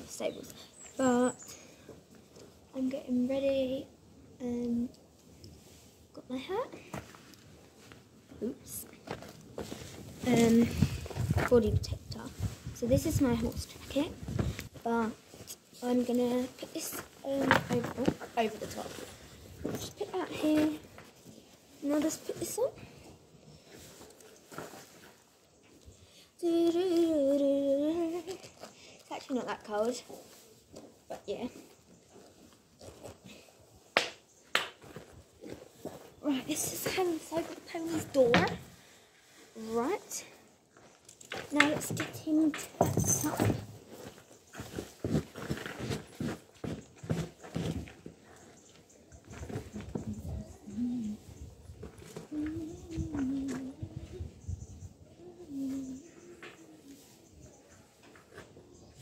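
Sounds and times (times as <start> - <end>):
faint rustling: 4.6 - 59.0
person humming: 50.6 - 51.2, 52.3 - 54.3.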